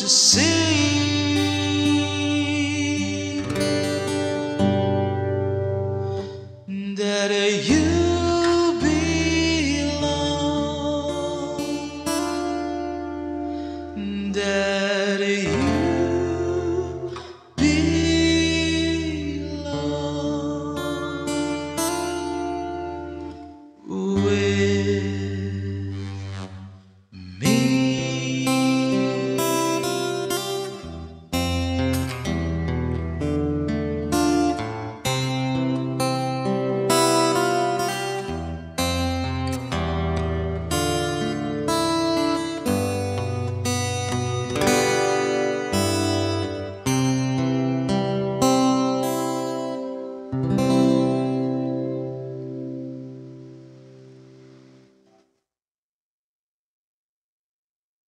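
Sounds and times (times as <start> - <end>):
wordless singing: 0.0 - 4.3, 14.0 - 21.6, 27.2 - 30.9
acoustic guitar ballad: 0.0 - 55.3.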